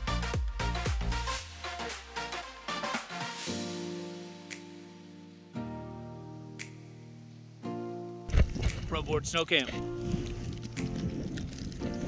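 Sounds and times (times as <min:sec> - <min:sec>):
background music of held chords: 0:00.0 - 0:12.0.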